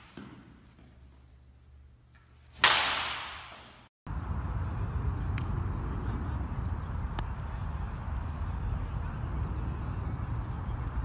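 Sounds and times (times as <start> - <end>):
baseball bat cracking ball: 2.5 - 3.8.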